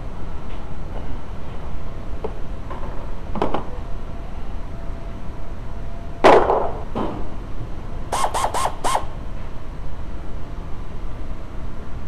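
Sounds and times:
short squeaks: 0:08.1 - 0:09.1.

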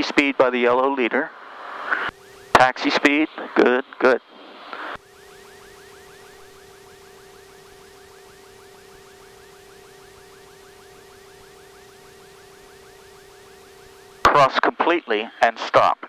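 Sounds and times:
warbling electronic tone: 0:05.0 - 0:14.4.

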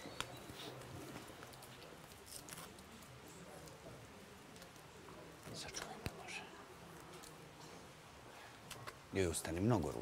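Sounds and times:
faint whispering: 0:05.4 - 0:07.4.

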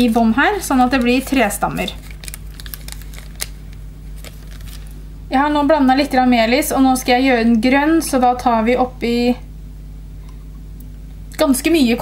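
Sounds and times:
steady low hum: 0:00.0 - 0:12.0
soft clicks and rustles of paper: 0:04.2 - 0:04.9.

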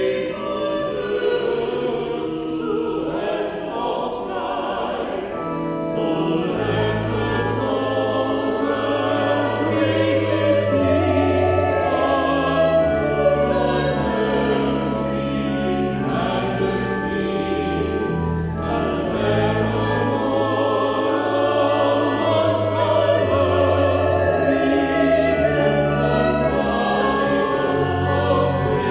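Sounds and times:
choir singing: 0:00.0 - 0:28.9
pipe organ bass notes: 0:00.0 - 0:28.9.

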